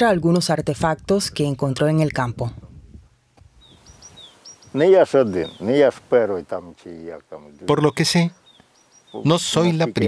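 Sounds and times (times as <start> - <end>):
small birds chirping: 3.4 - 10.0.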